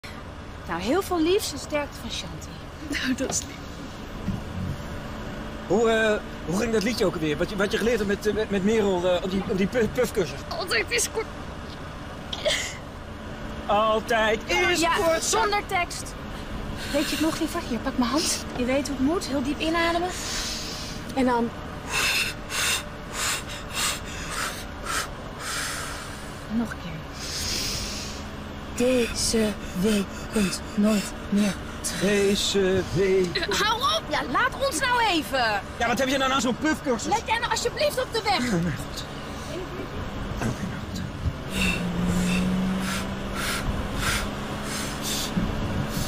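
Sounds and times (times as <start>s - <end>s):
car engine and road noise: 0.0s - 46.0s
rhythmic puffing breaths: 16.3s - 18.6s, 19.9s - 21.1s, 21.7s - 33.2s, 40.4s - 46.0s.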